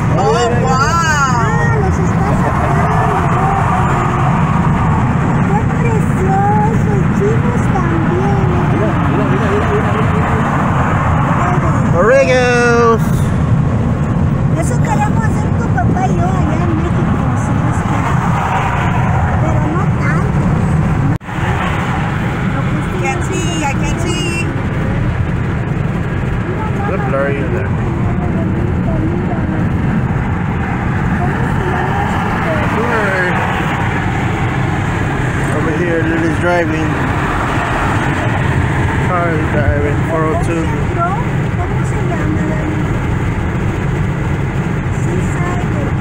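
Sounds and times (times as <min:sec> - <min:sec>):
road and engine noise in car: 0:00.0 - 0:46.0.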